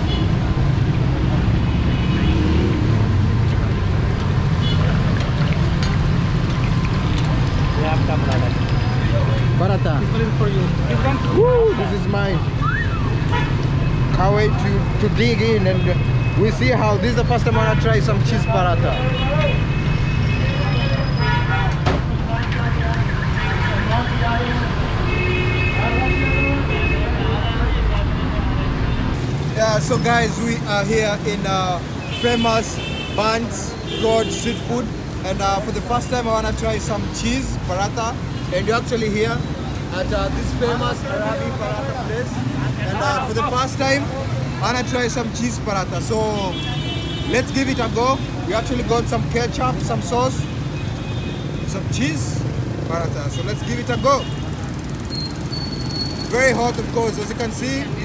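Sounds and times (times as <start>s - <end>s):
vehicle horns: 0.0s - 0.4s, 1.6s - 2.8s, 4.5s - 5.0s, 12.7s - 14.0s, 17.6s - 21.8s, 25.0s - 28.0s, 32.0s - 34.9s, 46.3s - 48.4s, 50.3s - 51.8s, 53.3s - 56.4s
busy street rumble: 0.0s - 58.0s
people's voices: 7.2s - 12.8s, 25.6s - 50.6s.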